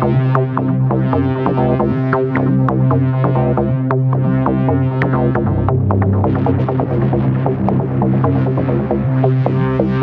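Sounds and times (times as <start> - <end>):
electronic techno music: 0.0 - 10.0.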